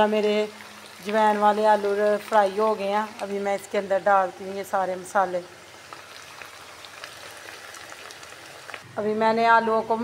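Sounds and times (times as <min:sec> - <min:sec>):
potatoes sizzling in oil: 0:00.0 - 0:08.9
faint crackles: 0:05.8 - 0:08.9.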